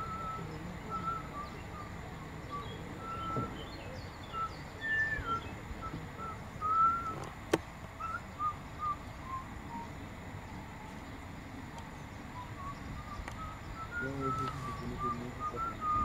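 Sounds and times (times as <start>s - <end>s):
short whistled notes: 12.4s - 16.0s.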